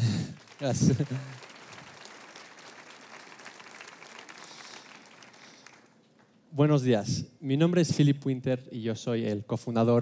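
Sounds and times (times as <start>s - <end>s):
faint audience applause: 0.0s - 6.3s.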